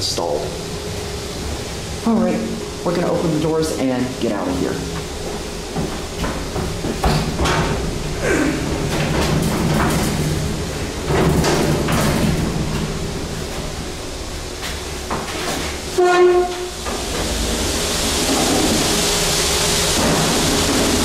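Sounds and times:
heavy doors scraping open: 5.0s - 13.8s, 14.5s - 21.0s.

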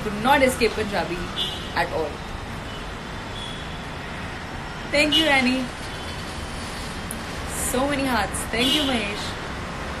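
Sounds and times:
distant city traffic rumble: 0.0s - 10.0s.

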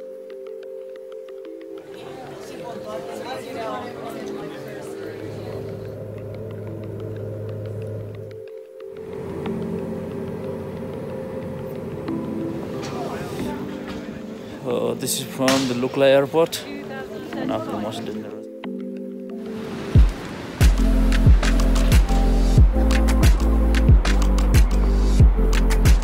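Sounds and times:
background music: 0.0s - 26.0s
indistinct voices: 1.8s - 8.4s, 9.0s - 18.5s
propeller plane cabin noise: 5.4s - 14.2s.

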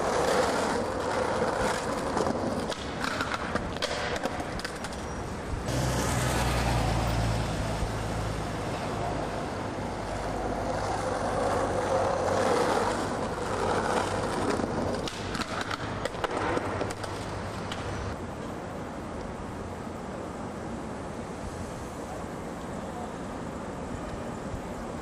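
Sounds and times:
car traffic hum: 0.0s - 25.0s
skateboard wheels rolling on pavement: 0.0s - 25.0s.

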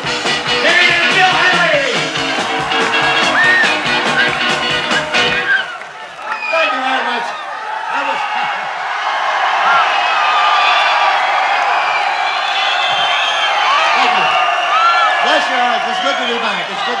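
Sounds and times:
audience cheering and shouting: 0.0s - 17.0s.

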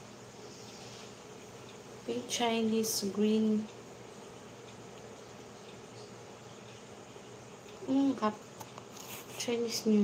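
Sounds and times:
faint buzzing hum: 0.0s - 10.0s.

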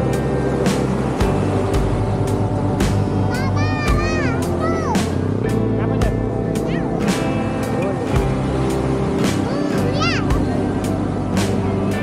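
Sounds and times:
rock music: 0.0s - 12.0s
steady drum beat: 0.0s - 12.0s.

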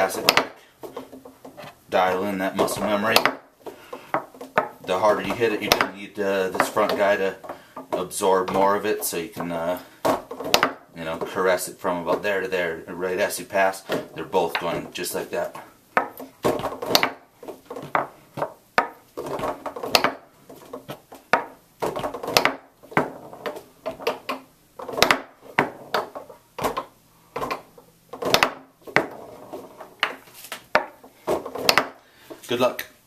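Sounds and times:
foosball ball knocks and rattles: 0.0s - 12.4s, 13.6s - 32.0s
foosball rods clacking: 0.0s - 32.5s.

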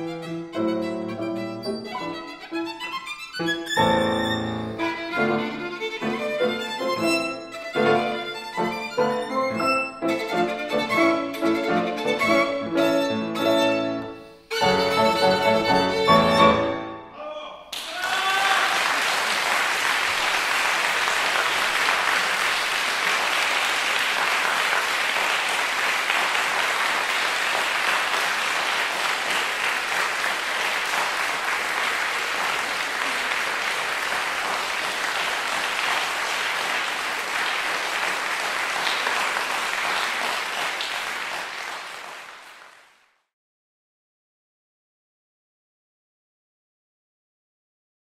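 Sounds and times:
audience applauding: 17.7s - 43.2s.

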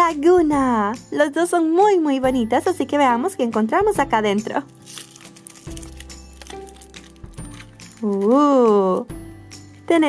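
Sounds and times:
soft background music: 0.0s - 10.0s
foil wrapper crinkling: 4.7s - 9.0s.

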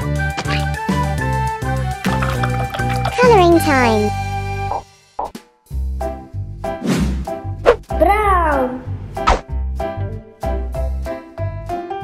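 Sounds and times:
bouncy children's music: 2.1s - 4.2s.

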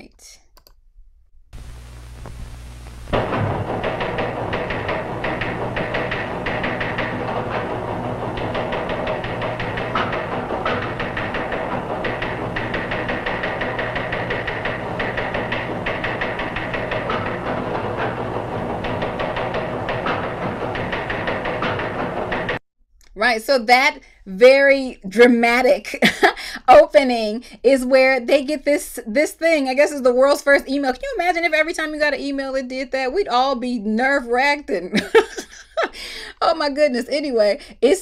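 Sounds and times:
teletype machine clattering: 3.1s - 22.6s.

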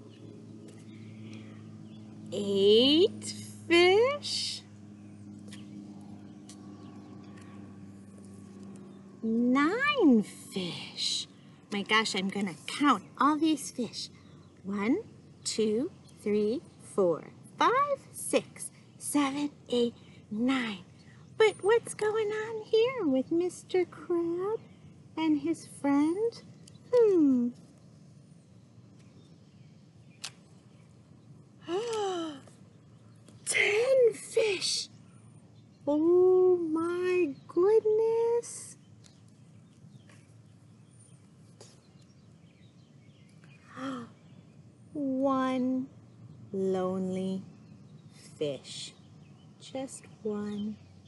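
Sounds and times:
steady background hum: 0.0s - 51.0s.

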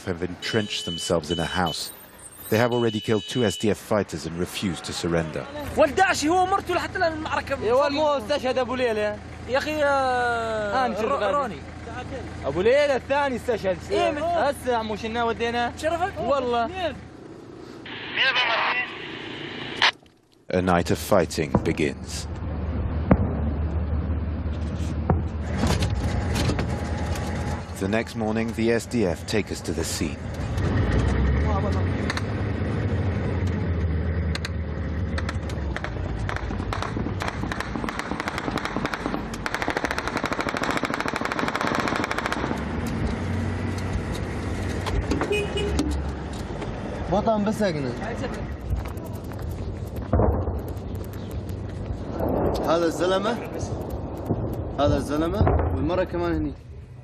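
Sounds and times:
vehicle engine rumbling: 0.0s - 57.0s
voice over two-way radio: 17.9s - 19.2s
rapid sharp cracks: 35.2s - 43.0s, 48.5s - 55.9s.

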